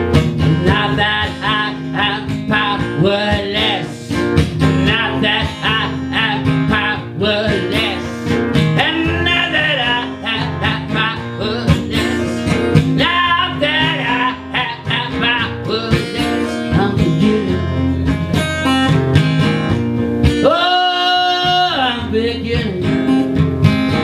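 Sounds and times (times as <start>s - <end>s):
acoustic guitar strumming: 0.0s - 24.0s
man singing: 0.1s - 18.5s, 20.3s - 24.0s.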